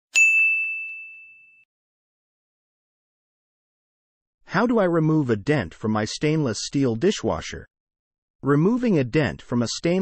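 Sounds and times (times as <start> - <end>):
bright bell-like ding: 0.1 - 1.7.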